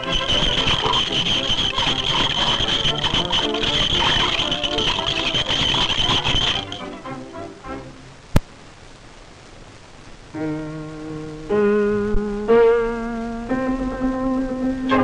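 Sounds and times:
film music score: 0:00.0 - 0:08.1.

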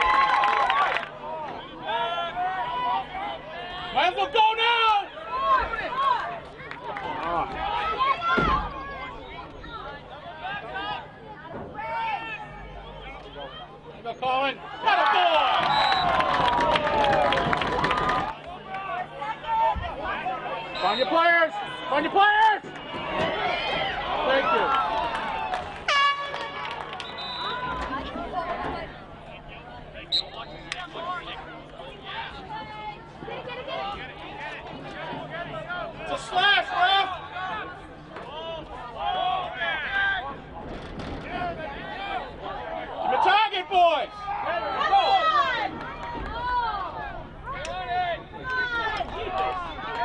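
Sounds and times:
faint outdoor background noise: 0:00.0 - 0:50.0
chatter of people: 0:00.9 - 0:14.9, 0:15.8 - 0:50.0
air horn blast: 0:25.9 - 0:26.9.

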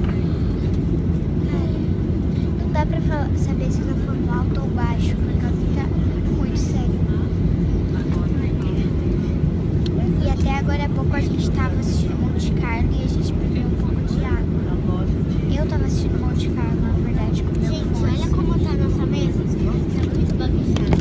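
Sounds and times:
airliner cabin rumble: 0:00.0 - 0:21.0
faint voices: 0:00.0 - 0:21.0.

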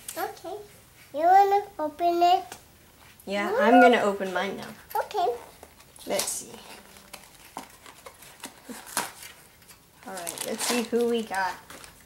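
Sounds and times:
plastic package crinkling: 0:05.6 - 0:12.0.

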